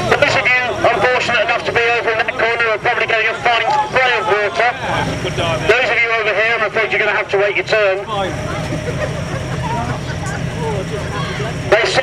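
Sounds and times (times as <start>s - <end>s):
faint voices: 0.0s - 12.0s
fire engine pump running: 0.0s - 12.0s.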